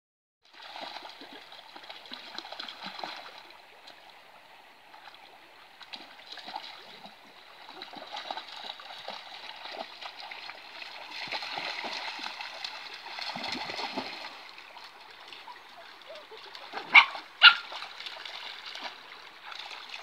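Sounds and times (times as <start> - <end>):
dogs splashing in water: 0.5 - 3.4, 5.9 - 20.0
running water: 0.5 - 20.0.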